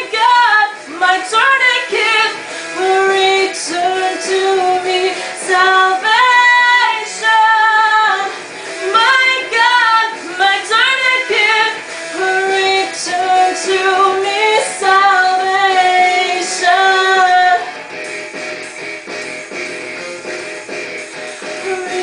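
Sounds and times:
woman singing rock song: 0:00.0 - 0:19.5, 0:20.4 - 0:22.0.

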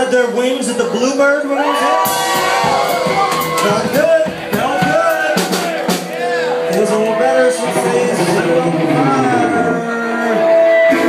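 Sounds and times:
crowd voices: 0:00.0 - 0:11.0
live band music: 0:01.6 - 0:11.0.

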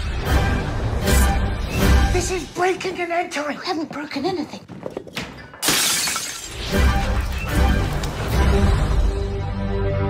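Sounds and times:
trailer music with pulsing bass: 0:00.0 - 0:02.2, 0:06.6 - 0:10.0
person speaking: 0:02.1 - 0:04.8
shattering crash: 0:05.6 - 0:08.2.

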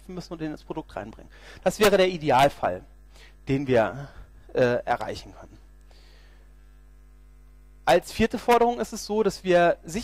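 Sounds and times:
man speaking: 0:00.0 - 0:05.6, 0:07.9 - 0:10.0
electrical mains hum: 0:00.0 - 0:10.0.

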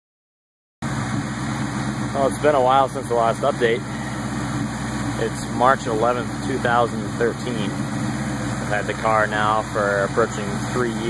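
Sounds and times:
car engine idling: 0:00.8 - 0:11.0.

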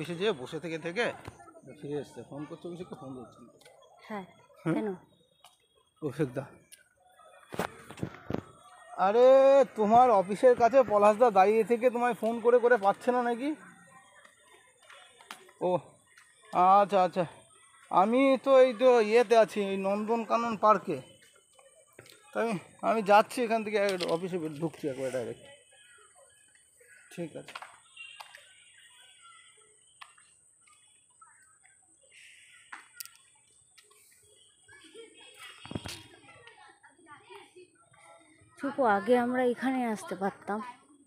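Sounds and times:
faint distant voices: 0:00.0 - 0:41.0.

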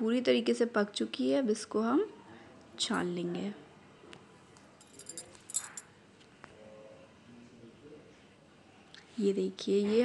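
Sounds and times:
ceramic tea cup clinking: 0:04.8 - 0:05.9.

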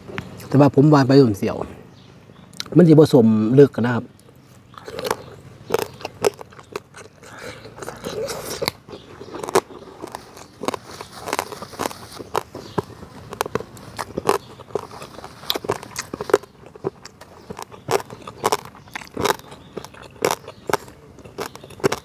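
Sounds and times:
person chewing food: 0:04.2 - 0:22.0.

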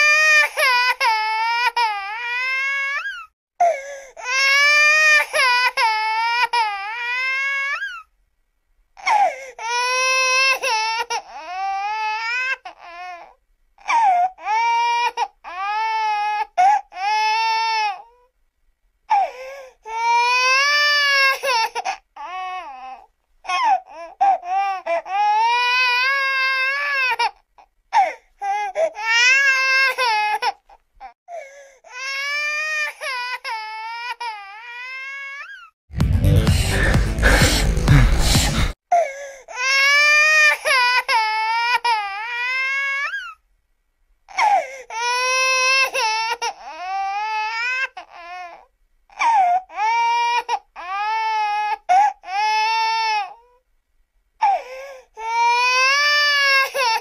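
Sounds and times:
baby wailing: 0:00.0 - 0:03.3, 0:04.2 - 0:08.1, 0:09.0 - 0:18.2, 0:19.1 - 0:31.2, 0:31.9 - 0:35.8, 0:38.9 - 0:43.4, 0:44.3 - 0:53.6, 0:54.4 - 0:57.0.

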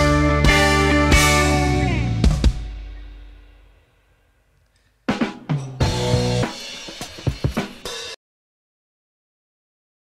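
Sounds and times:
drum-led music sting: 0:00.0 - 0:03.8, 0:05.1 - 0:08.2.

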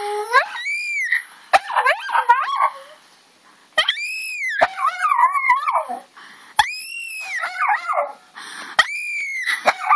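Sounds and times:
small dog howling: 0:00.0 - 0:03.0, 0:03.8 - 0:08.2, 0:08.8 - 0:09.9.

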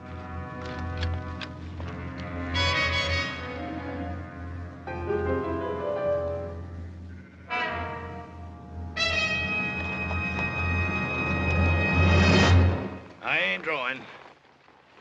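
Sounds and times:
brass chords: 0:00.0 - 0:13.0
dramatic orchestral music: 0:00.2 - 0:13.1.

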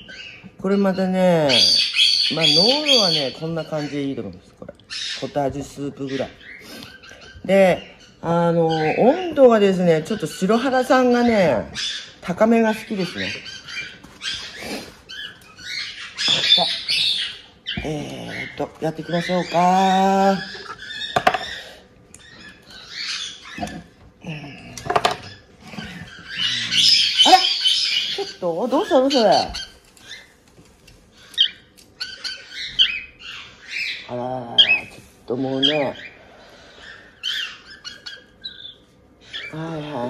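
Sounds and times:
bird chicks squawking: 0:00.0 - 0:40.0.

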